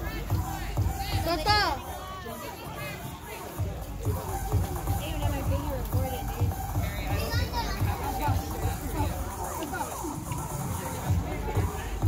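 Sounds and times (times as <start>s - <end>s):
background music with low beat: 0.0s - 12.0s
people chattering: 0.0s - 12.0s.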